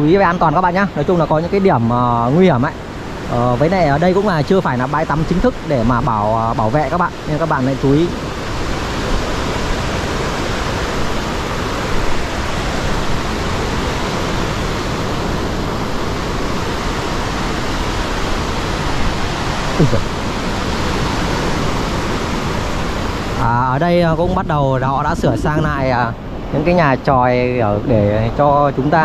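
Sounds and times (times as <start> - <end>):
waves breaking on beach: 0.0 - 29.0
wind on microphone: 0.0 - 29.0.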